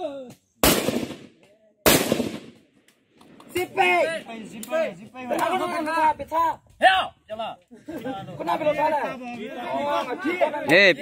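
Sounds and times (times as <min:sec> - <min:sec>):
rifle shots: 0:00.6 - 0:02.6.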